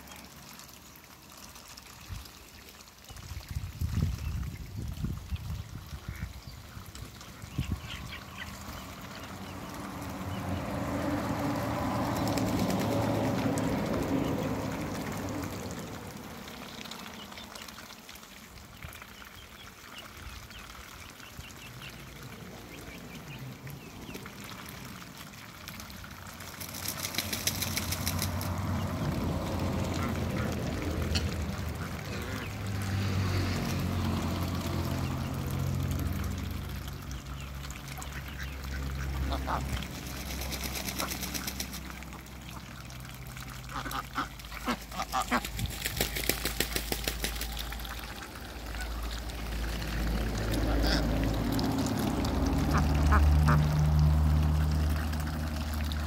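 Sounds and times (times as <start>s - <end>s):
ducks quacking: 29.6s - 32.7s, 37.3s - 41.8s, 43.6s - 45.8s, 50.5s - 51.4s, 52.2s - 55.0s.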